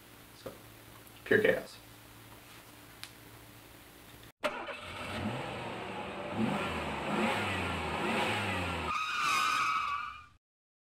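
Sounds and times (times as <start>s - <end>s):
high wavering squeal: 8.9s - 10.4s.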